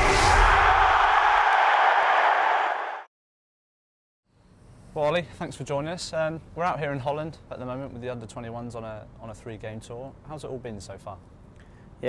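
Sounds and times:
stadium crowd cheering: 0:00.0 - 0:03.1.

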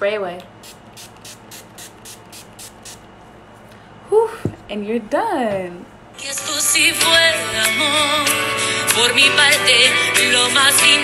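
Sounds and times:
spray bottle hissing: 0:00.6 - 0:03.1.

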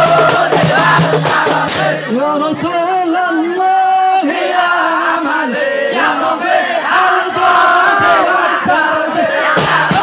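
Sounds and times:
men chanting together: 0:00.0 - 0:02.1, 0:04.1 - 0:10.0
frame drum ensemble: 0:00.0 - 0:02.7, 0:09.4 - 0:10.0.

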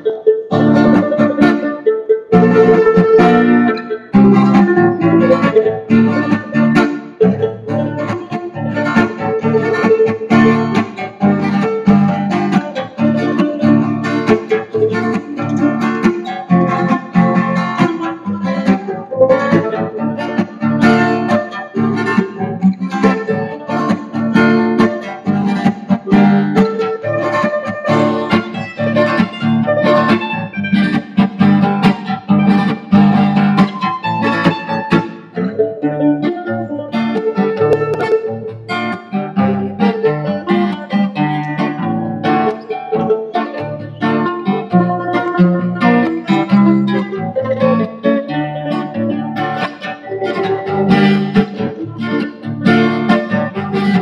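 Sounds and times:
acoustic guitar: 0:00.0 - 0:54.0
mandolin: 0:00.0 - 0:54.0.

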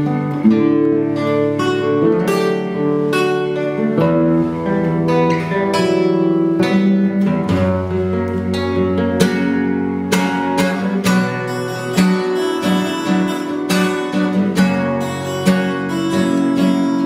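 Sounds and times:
guitar playing: 0:00.0 - 0:17.0.

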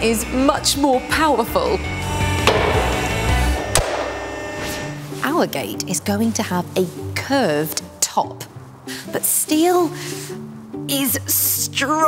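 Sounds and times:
machine low hum: 0:01.9 - 0:05.0
punching machine clunk: 0:02.4 - 0:04.8.

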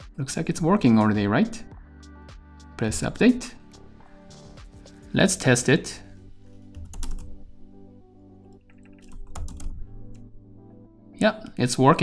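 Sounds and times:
background music: 0:00.0 - 0:12.0
typing on computer keyboard: 0:06.8 - 0:07.4, 0:08.6 - 0:10.2.

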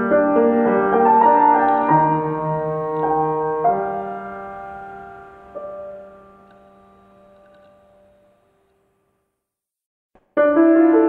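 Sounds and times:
piano chord ringing: 0:00.0 - 0:08.7
faint clicks: 0:06.4 - 0:07.9.

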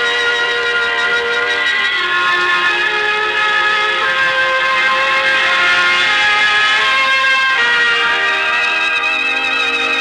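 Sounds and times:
orchestral music: 0:00.0 - 0:10.0.

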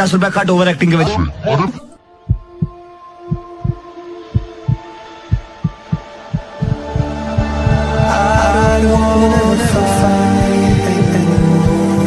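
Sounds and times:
heartbeat sound effect: 0:02.3 - 0:12.0
steady held tones: 0:04.4 - 0:12.0.

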